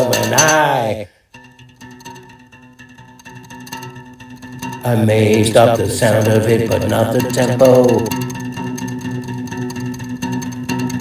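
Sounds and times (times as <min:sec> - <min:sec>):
acoustic instrumental held notes: 0:00.0 - 0:11.0
soft percussive beat: 0:00.0 - 0:11.0.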